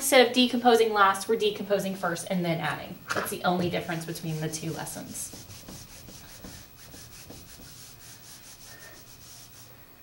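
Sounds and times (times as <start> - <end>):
eraser rubbing on whiteboard: 3.9 - 9.7.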